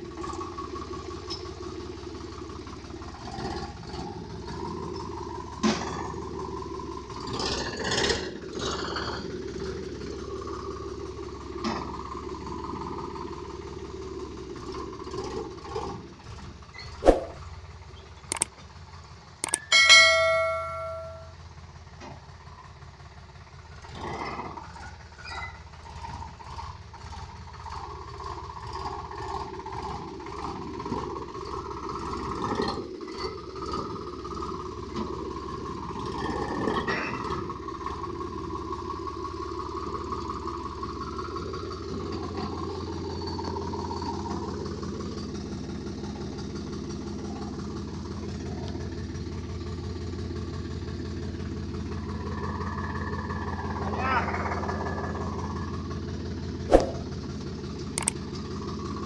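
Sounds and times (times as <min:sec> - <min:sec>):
tractor diesel engine running: 0:00.0 - 0:59.0
brief ringing tone: 0:19.4 - 0:21.4.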